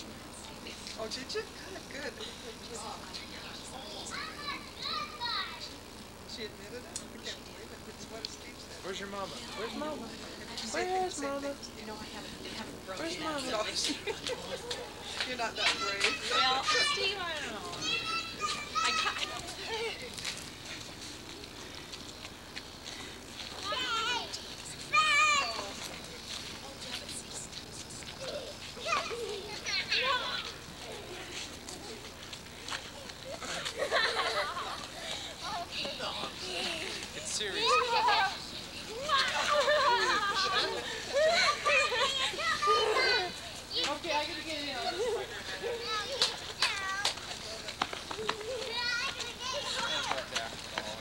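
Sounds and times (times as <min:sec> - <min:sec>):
children calling out in play: 0:03.7 - 0:06.0, 0:14.0 - 0:22.4, 0:23.5 - 0:26.6, 0:28.0 - 0:50.5.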